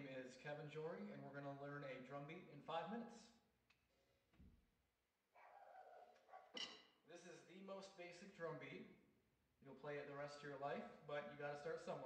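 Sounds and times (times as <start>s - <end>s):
distant dog barking: 5.4s - 6.6s.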